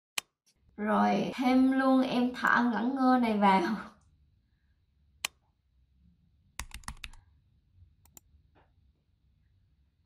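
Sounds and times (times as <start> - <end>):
computer mouse clicks: 5.2 - 5.4, 6.6 - 7.2, 8.0 - 8.3
keyboard keystrokes: 6.6 - 7.2.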